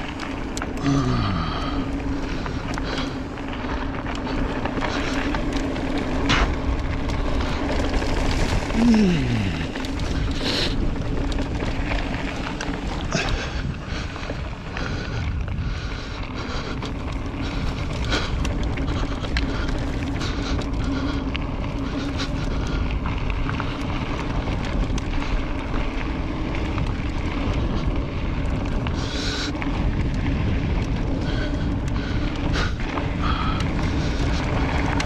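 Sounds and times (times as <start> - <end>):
bike clicks and rattles: 0.0 - 35.0
electric bike motor hum: 0.0 - 35.0
wind buffeting microphone: 0.0 - 35.0.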